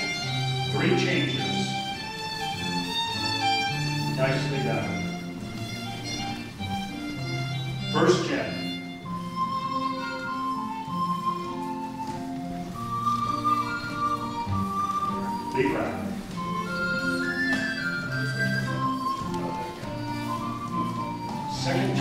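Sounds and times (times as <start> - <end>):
fiddle melody: 0.0 - 22.0
flute melody: 0.0 - 22.0.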